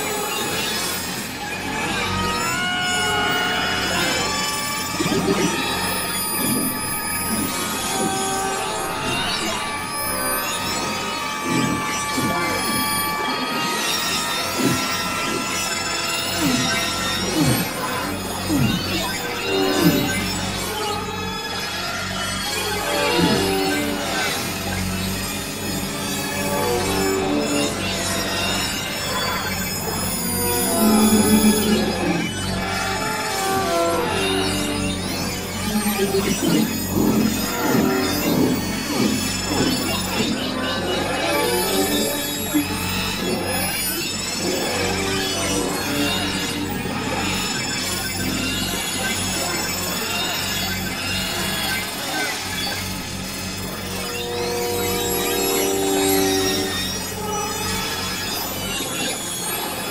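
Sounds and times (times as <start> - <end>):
gliding squeals and whistles: 0.0 - 59.9
low drone: 3.1 - 20.8, 25.3 - 43.7
layered held electronic tones: 3.2 - 21.8, 22.6 - 59.2
high gliding whistles: 28.4 - 32.2.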